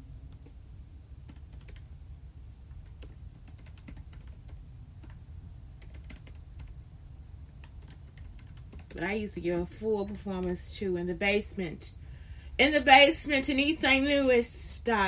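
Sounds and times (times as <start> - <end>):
low background rumble: 0.0 - 15.0.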